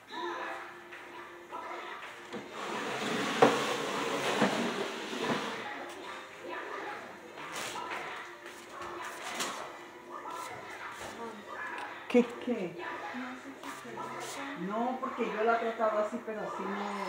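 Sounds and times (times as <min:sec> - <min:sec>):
rustling and handling noise: 0:07.3 - 0:11.9, 0:13.6 - 0:14.6.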